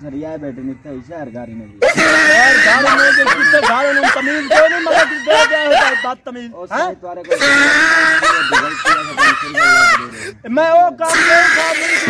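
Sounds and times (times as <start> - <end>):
person laughing: 1.9 - 6.1, 7.3 - 10.3.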